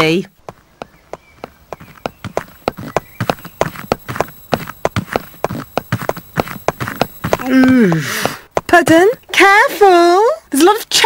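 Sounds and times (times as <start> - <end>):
footsteps on pavement: 0.0 - 9.9.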